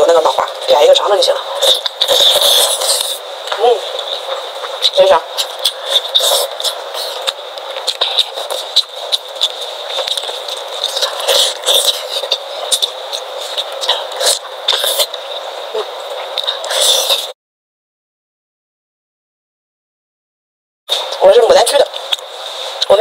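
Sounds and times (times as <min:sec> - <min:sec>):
plastic gloves crinkling: 0:00.0 - 0:17.3
wet chewing: 0:00.4 - 0:17.3, 0:21.9 - 0:23.0.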